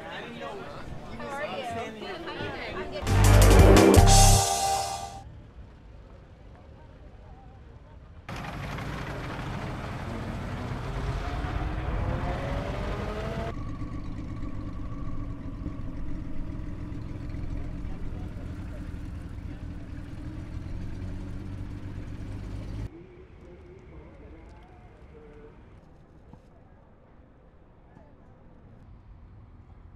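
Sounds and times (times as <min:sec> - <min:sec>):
traffic noise: 0:00.0 - 0:29.9
car engine running: 0:08.3 - 0:22.9
car engine speeding up: 0:08.3 - 0:22.9.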